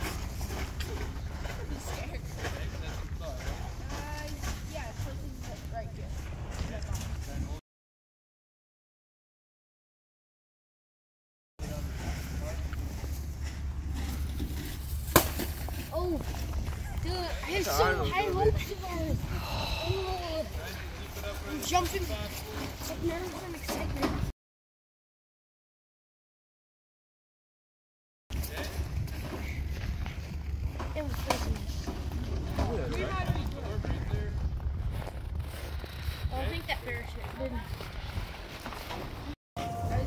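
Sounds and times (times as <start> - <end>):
wind buffeting microphone: 16.2 - 21.1, 28.3 - 39.3.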